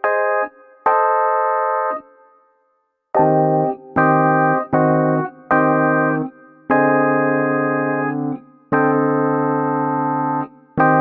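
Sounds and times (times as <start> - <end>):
electronic keyboard chord: 0.0 - 2.6, 3.2 - 11.0.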